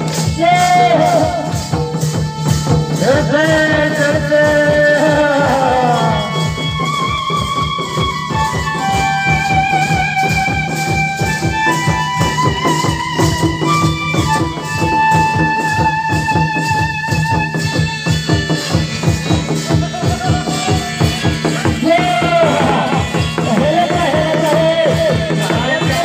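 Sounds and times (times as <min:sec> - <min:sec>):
barrel drums beaten fast: 0:00.0 - 0:26.0.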